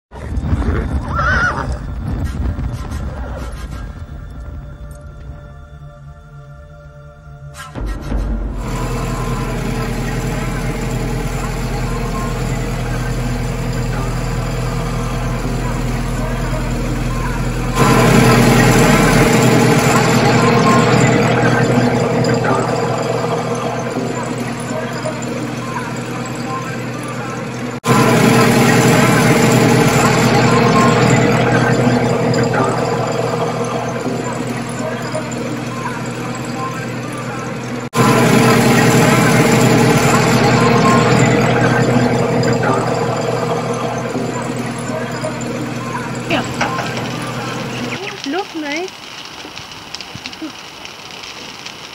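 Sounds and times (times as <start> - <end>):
tractor diesel engine running: 7.8 - 50.3.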